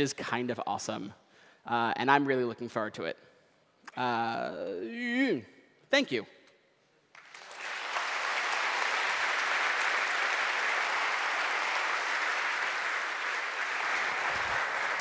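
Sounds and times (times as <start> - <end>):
audience applauding: 7.1 - 15.0.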